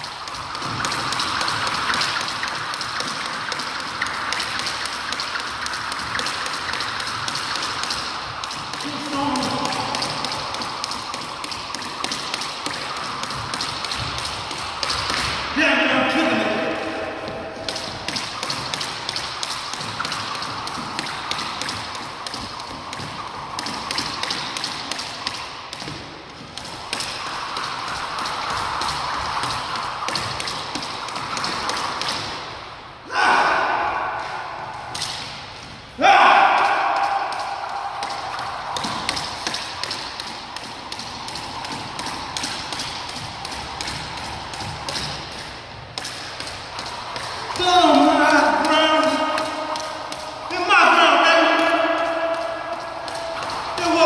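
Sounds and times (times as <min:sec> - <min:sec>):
jump rope slapping wooden floor: 0:00.0 - 0:32.8, 0:34.1 - 0:54.0
person's voice: 0:53.8 - 0:54.0.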